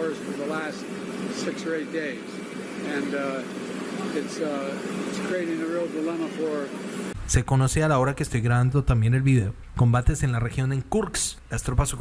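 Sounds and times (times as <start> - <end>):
man speaking: 0.0 - 12.0
steady low hum: 0.0 - 12.0.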